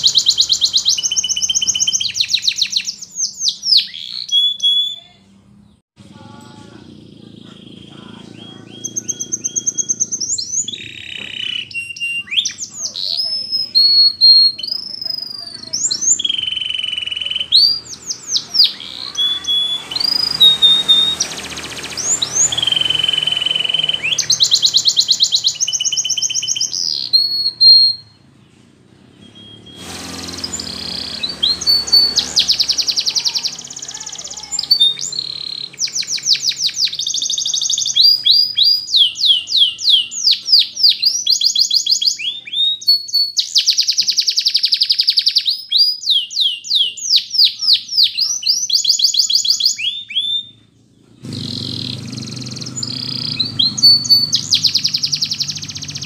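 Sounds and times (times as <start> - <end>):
canary singing: 0.0 - 56.0.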